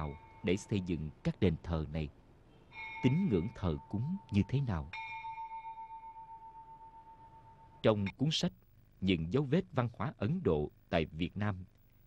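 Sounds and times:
bell ringing: 0:00.0 - 0:00.8, 0:02.7 - 0:08.1.

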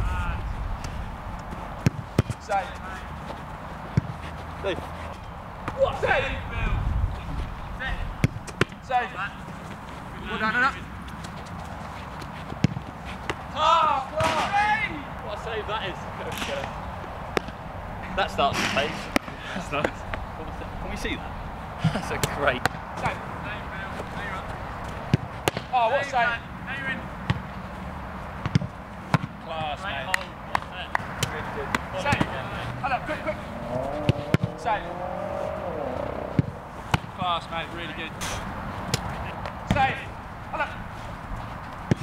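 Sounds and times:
football being kicked: 0:01.5 - 0:02.4, 0:28.4 - 0:29.3, 0:34.0 - 0:34.5.

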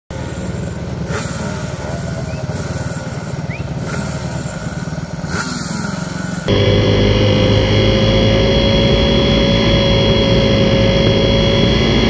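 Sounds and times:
motorcycle engines idling: 0:00.1 - 0:12.0.

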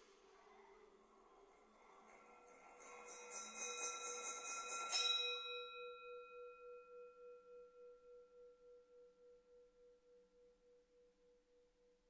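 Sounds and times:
singing bowl ringing: 0:02.4 - 0:10.9.

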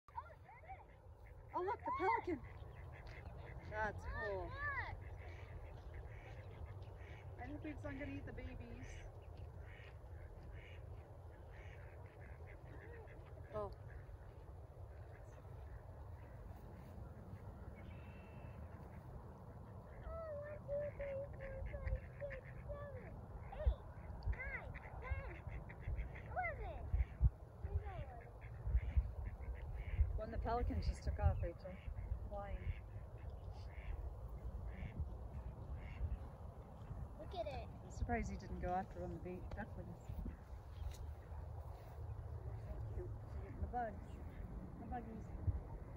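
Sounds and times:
ducks quacking: 0:00.1 - 0:45.9.

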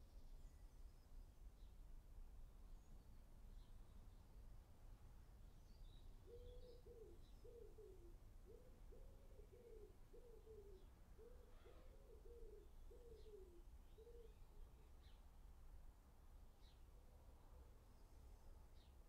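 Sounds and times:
dove cooing: 0:06.2 - 0:14.3.

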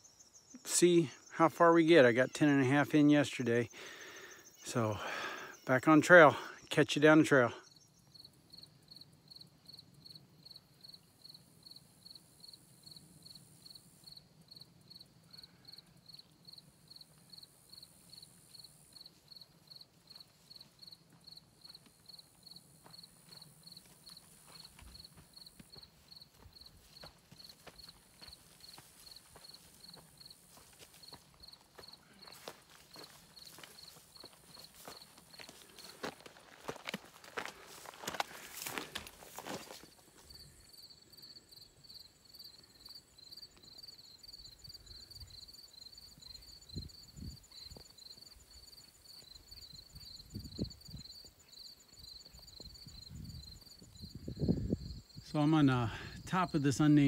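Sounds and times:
insects chirping: 0:00.0 - 0:57.0
footsteps on rocky trail: 0:20.1 - 0:40.4.

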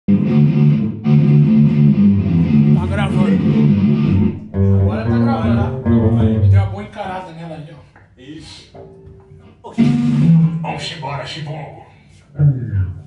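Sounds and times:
electric guitar and bass riff: 0:00.1 - 0:06.8, 0:08.9 - 0:10.8, 0:12.4 - 0:13.0
man's voice: 0:02.8 - 0:03.7, 0:04.7 - 0:07.8.

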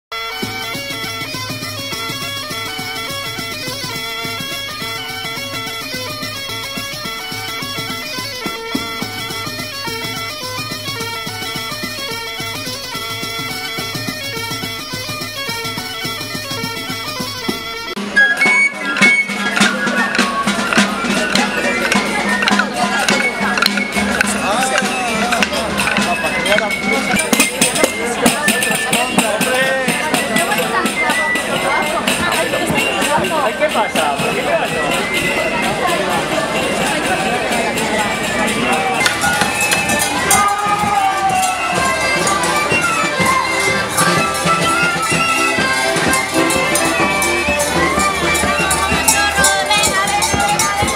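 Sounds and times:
crowd voices: 0:00.2 - 0:50.9
folk music with drone: 0:00.2 - 0:50.9
parade music: 0:00.2 - 0:50.9
wooden sticks clacking: 0:19.0 - 0:26.6.

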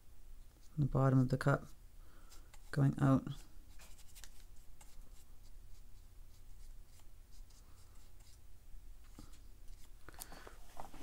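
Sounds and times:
brush scratching on paper: 0:01.6 - 0:08.4.

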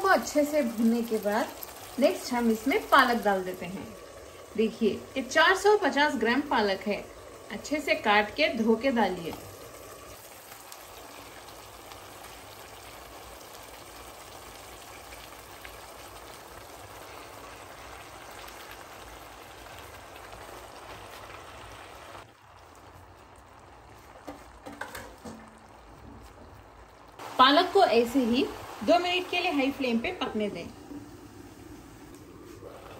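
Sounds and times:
oil sizzling in a pan: 0:00.0 - 0:32.9.

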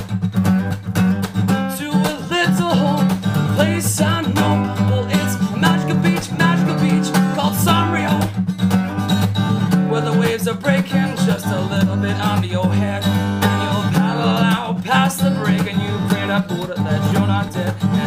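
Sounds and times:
acoustic guitar strumming: 0:00.0 - 0:18.0.

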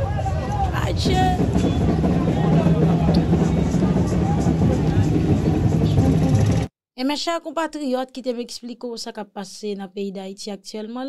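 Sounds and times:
crowd street noise: 0:00.0 - 0:06.7
heavy low rumble: 0:00.0 - 0:06.7.

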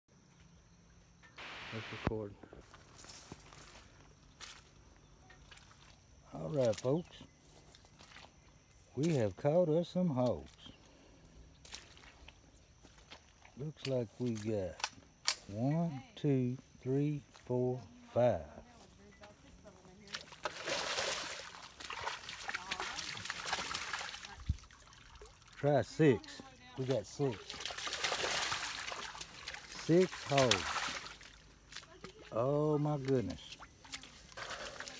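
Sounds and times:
footstep through wet grass: 0:01.4 - 0:09.4, 0:10.1 - 0:14.8, 0:17.3 - 0:25.6, 0:26.2 - 0:34.9.

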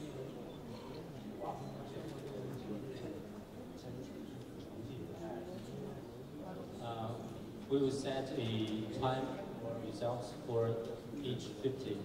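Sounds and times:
man talking: 0:06.8 - 0:12.0.

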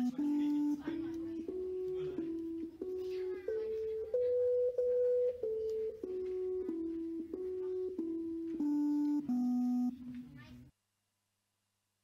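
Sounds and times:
electronic tones from small speaker: 0:00.0 - 0:10.6.

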